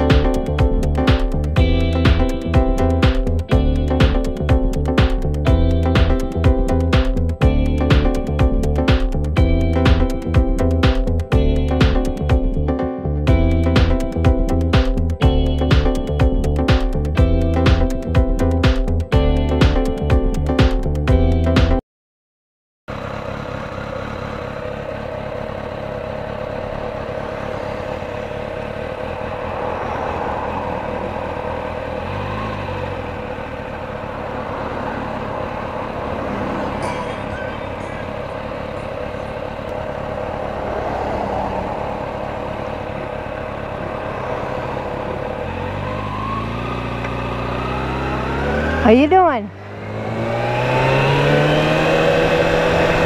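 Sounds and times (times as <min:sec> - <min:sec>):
motorcycle engine idling: 0:00.0 - 0:12.6, 0:22.9 - 0:51.3
deeper motorcycle engine: 0:00.0 - 0:21.8, 0:22.9 - 0:53.0
cars passing: 0:23.0 - 0:53.0.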